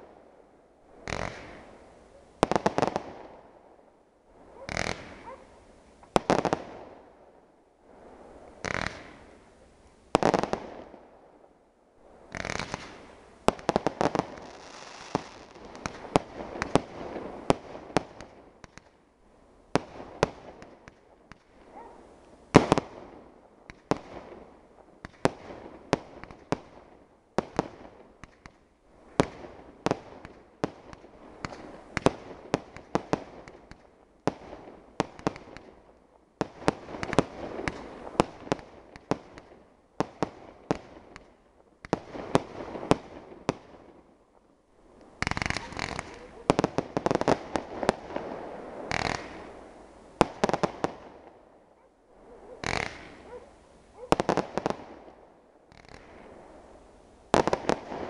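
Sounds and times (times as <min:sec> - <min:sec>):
fireworks bursting: 0:01.0 - 0:01.8, 0:02.4 - 0:03.2, 0:04.6 - 0:05.5, 0:08.6 - 0:09.4, 0:12.3 - 0:18.9, 0:27.4 - 0:35.8, 0:36.4 - 0:44.0, 0:45.0 - 0:51.4, 0:52.3 - 0:55.1, 0:57.3 - 0:58.0
fireworks hiss: 0:12.4 - 0:16.0, 0:45.1 - 0:50.7, 0:52.6 - 0:53.3.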